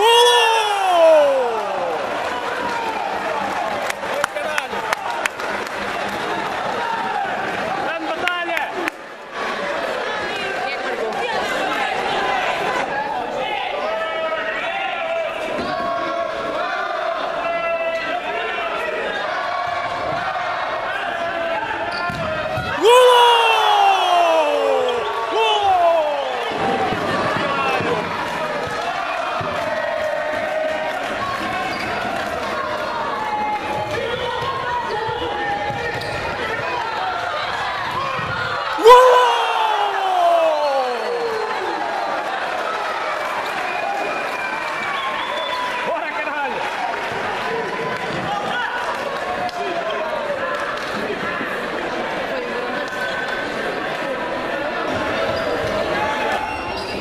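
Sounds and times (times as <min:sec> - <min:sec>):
players shouting: 0:00.0 - 0:03.6, 0:21.0 - 0:29.5, 0:33.6 - 0:42.6.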